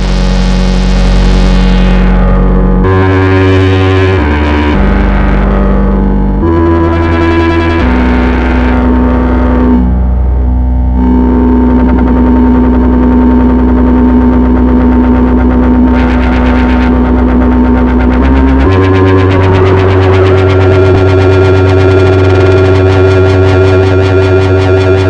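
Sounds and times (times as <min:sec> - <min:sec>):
buzzy synthesizer tone: 0:00.0 - 0:25.0.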